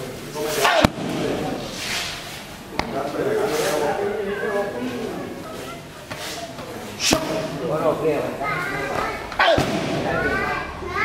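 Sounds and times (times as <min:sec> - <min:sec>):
strike smacking a pad: 0:00.7 - 0:01.4, 0:09.4 - 0:10.0.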